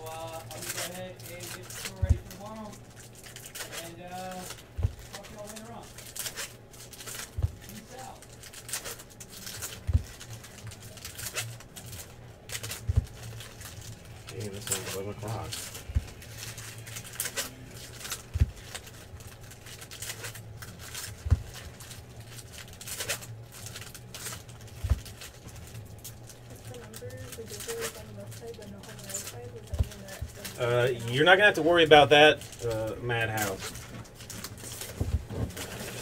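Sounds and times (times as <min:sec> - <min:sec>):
foil packs tearing and crinkling: 0:00.0 - 0:36.0
cards knocking on table: 0:12.8 - 0:13.2.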